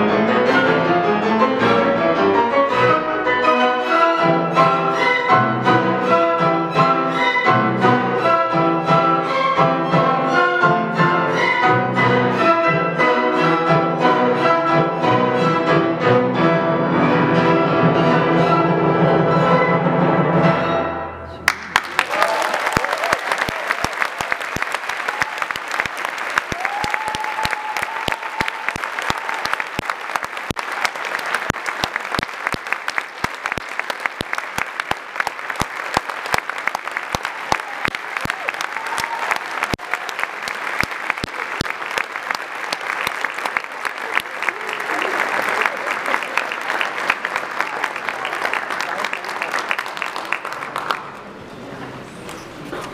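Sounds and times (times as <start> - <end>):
audience applauding: 21.4 - 51.5.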